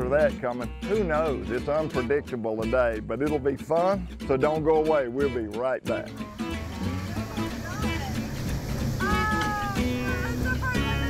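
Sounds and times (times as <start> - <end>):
country background music: 0.0 - 11.0.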